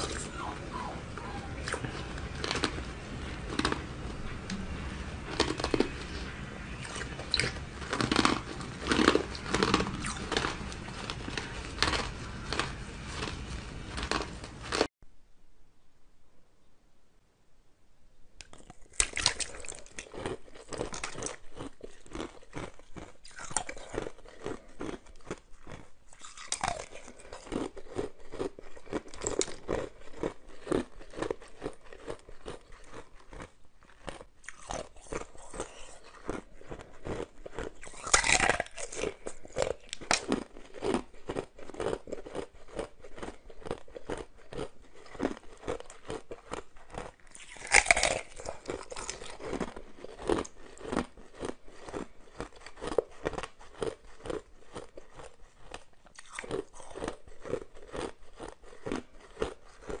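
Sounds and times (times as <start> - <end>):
ice being chewed: 0.0 - 14.9, 18.4 - 60.0.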